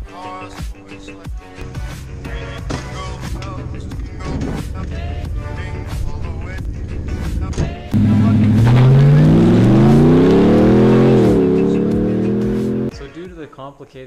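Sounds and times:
music: 0.0s - 14.0s
pickup truck engine accelerating: 8.0s - 12.9s.

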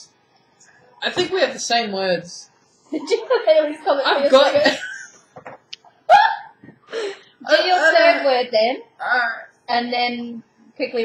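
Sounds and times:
woman laughing: 2.9s - 5.1s.

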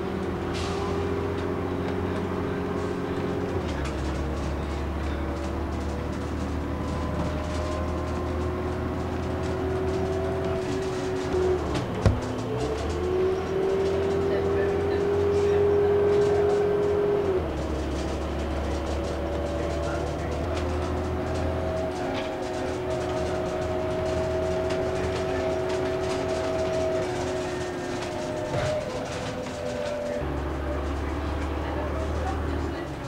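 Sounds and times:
bus whine: 0.0s - 33.0s
low engine hum: 0.0s - 33.0s.

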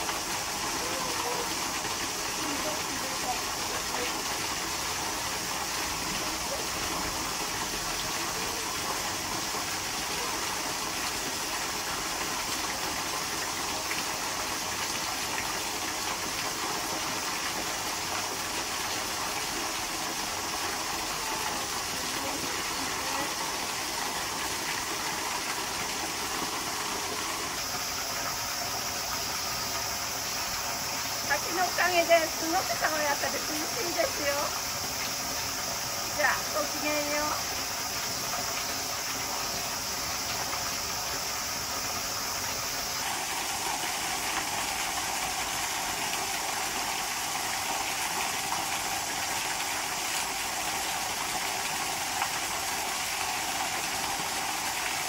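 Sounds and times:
waterfall splashing onto rocks: 0.0s - 55.0s.

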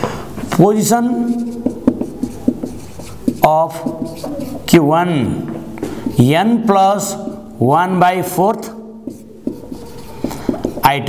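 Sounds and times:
pen strokes and taps: 0.4s - 4.8s, 5.4s - 6.3s, 6.9s - 7.6s, 8.2s - 11.0s.

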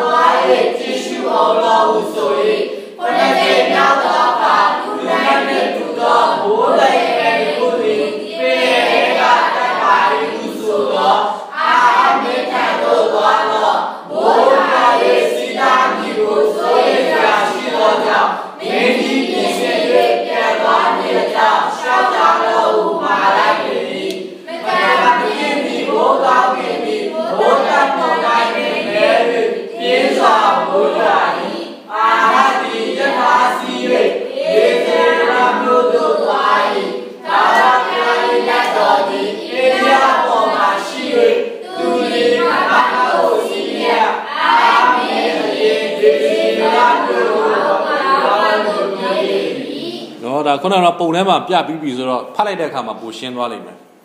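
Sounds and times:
congregation singing: 0.0s - 50.4s.

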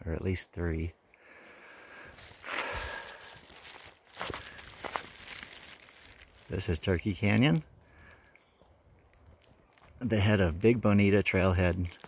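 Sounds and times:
faint footsteps: 2.0s - 6.5s, 7.2s - 10.8s
rustling: 2.1s - 8.4s.

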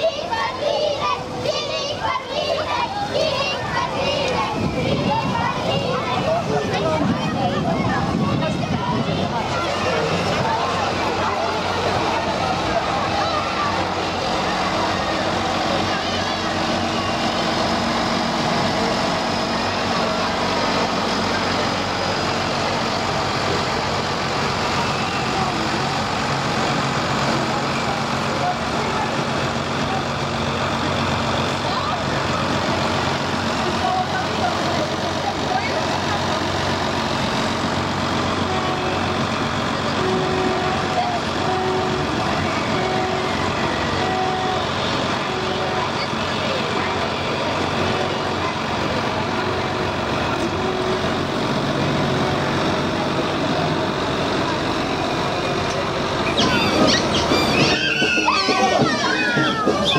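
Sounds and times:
people's voices: 0.0s - 59.9s
tractor diesel engine running: 0.0s - 59.9s.

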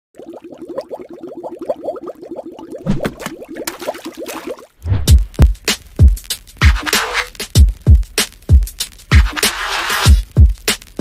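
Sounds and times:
small rising bubbling bloops: 0.2s - 5.0s.

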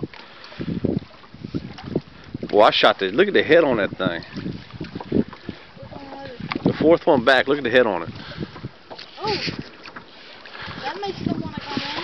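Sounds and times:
small waves lapping: 0.0s - 12.0s
wind: 0.0s - 12.0s.

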